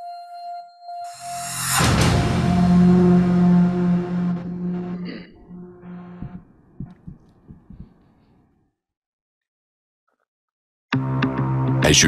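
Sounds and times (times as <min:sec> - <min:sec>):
low hum: 0:01.3 - 0:08.5
soft low thumps: 0:04.4 - 0:08.3.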